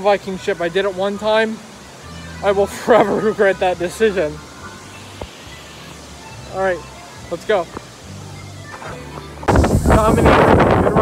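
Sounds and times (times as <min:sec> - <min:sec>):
faint background music: 0:00.0 - 0:11.0
wind rushing over microphone: 0:09.4 - 0:11.0.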